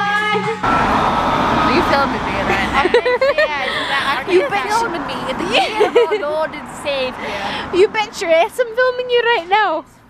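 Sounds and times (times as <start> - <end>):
street traffic noise: 0.0 - 10.0.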